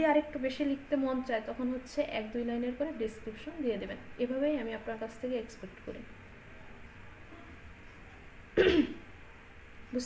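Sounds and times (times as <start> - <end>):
woman clearing her throat: 8.6 - 9.0.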